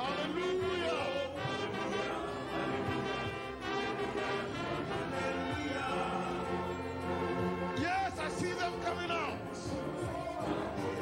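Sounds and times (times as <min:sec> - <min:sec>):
orchestra playing worship music: 0:00.0 - 0:11.0.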